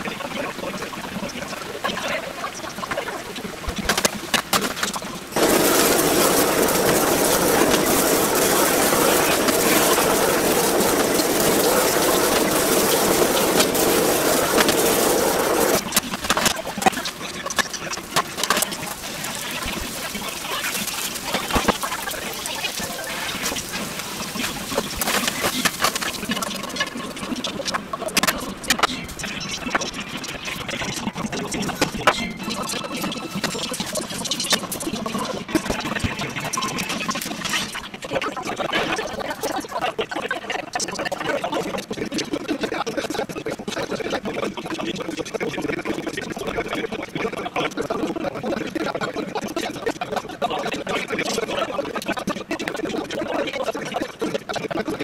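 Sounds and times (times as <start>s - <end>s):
noodles and meat sizzling in pan: 2.7s - 28.8s.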